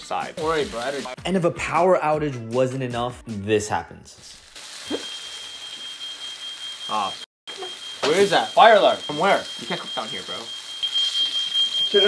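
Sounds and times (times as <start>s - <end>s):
frying pan sizzling: 0.0s - 1.2s, 4.3s - 12.0s
smoke alarm tone: 4.8s - 12.0s.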